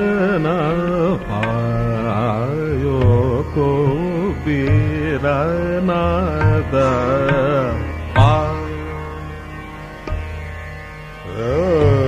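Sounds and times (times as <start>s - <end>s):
classical vocal singing: 0.0s - 9.1s, 11.3s - 12.0s
tanpura drone: 0.0s - 12.0s
deep tabla stroke: 0.7s - 11.0s.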